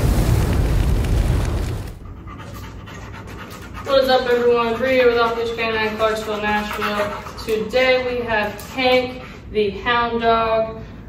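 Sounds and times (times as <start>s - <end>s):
fire and boom sound effect: 0.0s - 2.0s
dog panting: 2.0s - 9.8s.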